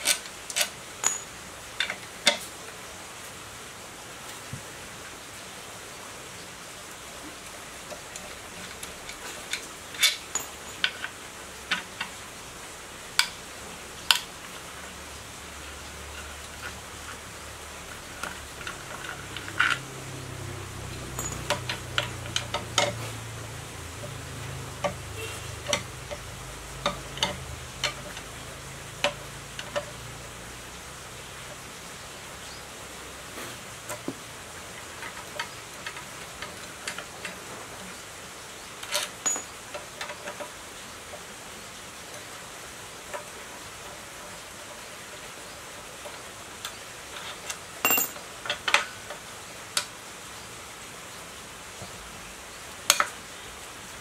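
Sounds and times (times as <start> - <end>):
wrench clinking on metal: 0.0 - 2.4, 9.1 - 11.1, 20.9 - 23.0, 38.8 - 39.6, 47.8 - 48.9.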